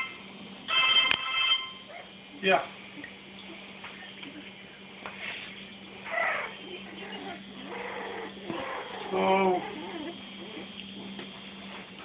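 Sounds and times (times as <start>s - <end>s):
low steady hum: 0.0s - 12.0s
puppies whining and yelping: 6.0s - 11.2s.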